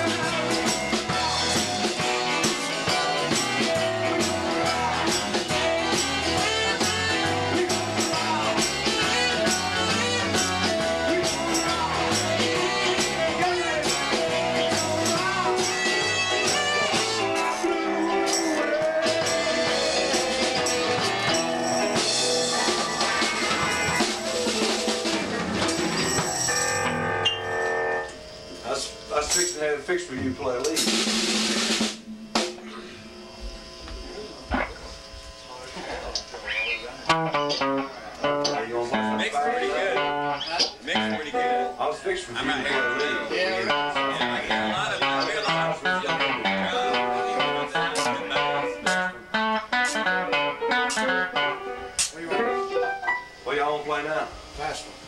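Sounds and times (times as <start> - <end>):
rockabilly band playing: 0.0 - 33.2, 35.8 - 54.7.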